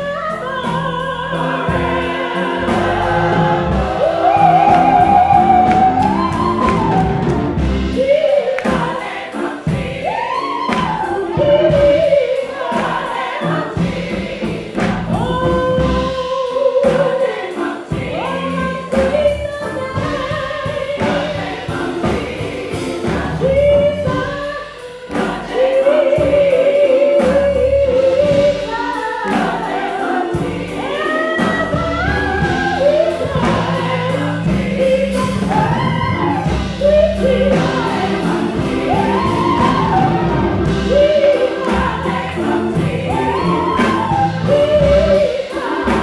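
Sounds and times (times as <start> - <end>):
gospel choir singing: 0.0 - 46.0
steady beat: 1.4 - 24.5, 25.1 - 46.0.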